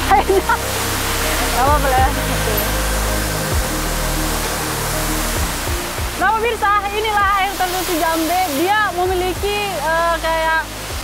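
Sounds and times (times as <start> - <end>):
background music with bass: 0.0 - 11.0
waterfall rushing: 0.0 - 11.0
woman speaking: 1.4 - 2.8, 6.2 - 10.7.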